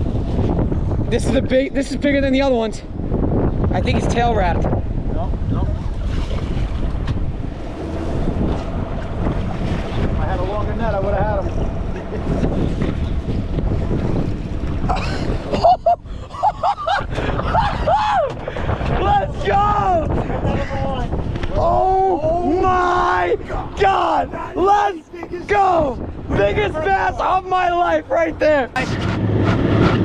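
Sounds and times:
sea and boat on choppy water: 0.0 - 30.0
wind buffeting microphone: 0.0 - 30.0
raised excited voices: 21.6 - 27.2.

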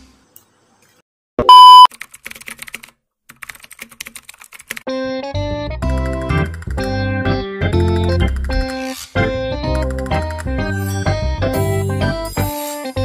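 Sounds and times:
loud electronic beep: 1.4 - 1.9
background music: 4.9 - 13.0.

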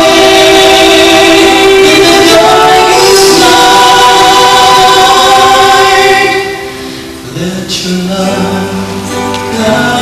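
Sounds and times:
worship song singing: 0.0 - 10.0.

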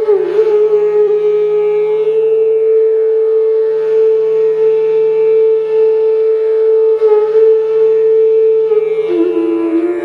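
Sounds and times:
flute long note: 0.0 - 10.0.

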